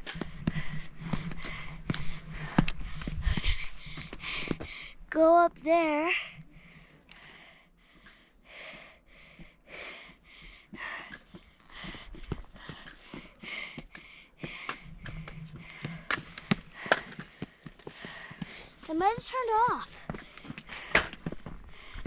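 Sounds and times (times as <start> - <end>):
person breathing hard: 0.0 - 5.1, 6.2 - 18.9, 19.6 - 22.0.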